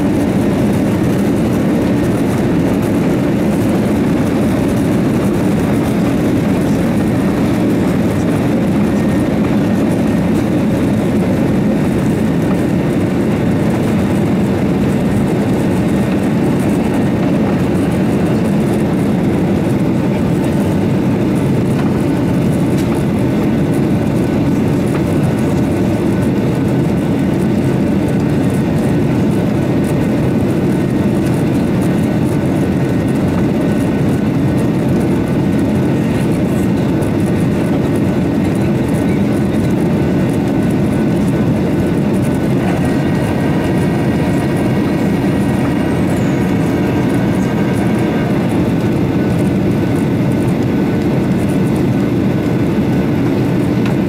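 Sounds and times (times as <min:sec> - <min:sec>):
airplane cabin engine rumble: 0:00.0 - 0:54.0.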